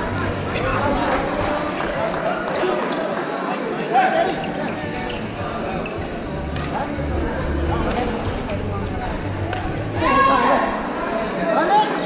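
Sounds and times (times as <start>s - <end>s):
voices chattering: 0.0s - 12.0s
shoes squeaking on floor: 4.2s - 6.4s
racket hitting shuttlecock: 6.6s - 6.8s.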